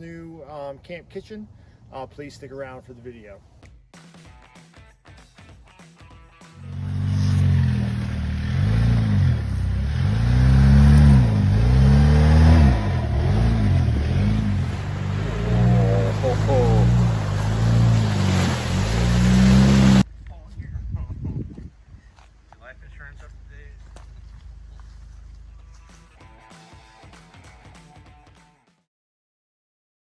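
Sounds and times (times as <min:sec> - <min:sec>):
engine revving: 0:06.6 - 0:20.1
tyres rushing through water: 0:07.9 - 0:20.1.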